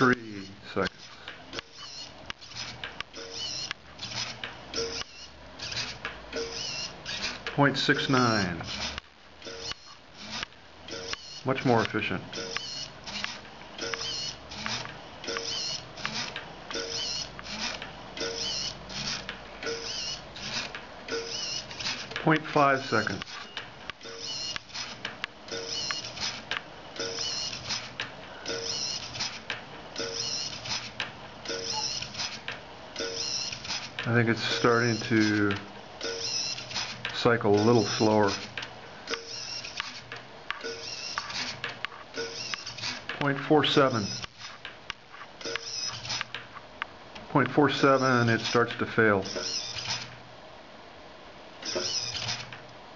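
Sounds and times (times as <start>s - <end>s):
small servo whirring: 0.0s - 43.1s, 43.8s - 44.6s, 45.4s - 46.4s, 47.9s - 50.2s, 51.6s - 52.6s
mechanism clicking: 0.0s - 50.2s, 51.6s - 52.8s.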